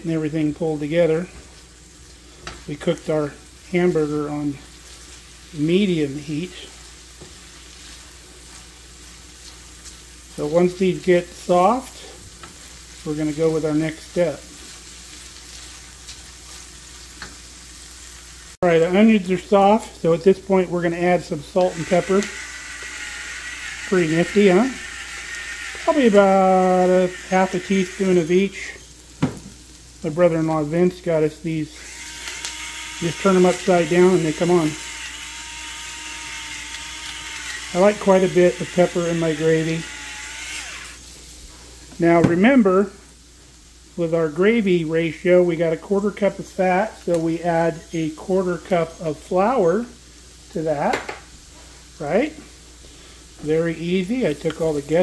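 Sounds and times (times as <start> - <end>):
onions sizzling in a pan: 0.2 - 55.0
electric pepper grinder running: 21.6 - 28.3, 31.8 - 41.0.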